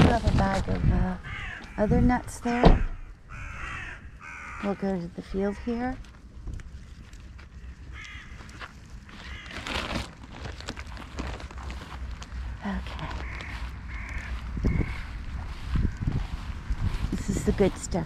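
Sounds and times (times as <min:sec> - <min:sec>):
steady low rumble: 0:00.0 - 0:18.0
crows cawing: 0:01.2 - 0:05.8, 0:07.4 - 0:10.1, 0:12.1 - 0:16.2.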